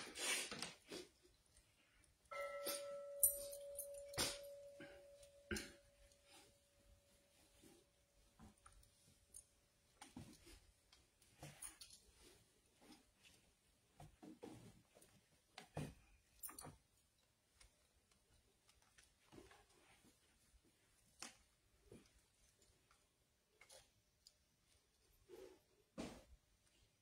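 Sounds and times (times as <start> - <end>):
faint irregular clicks: 16.4 - 19.8.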